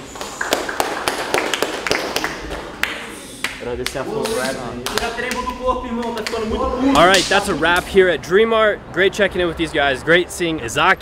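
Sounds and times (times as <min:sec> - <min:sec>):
hands slapping and clapping: 0:00.0 - 0:06.4.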